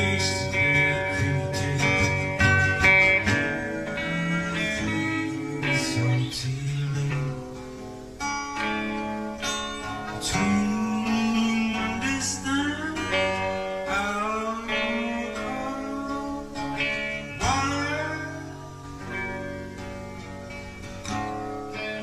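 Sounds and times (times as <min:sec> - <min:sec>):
plucked guitar slow tune: 0:00.0 - 0:22.0.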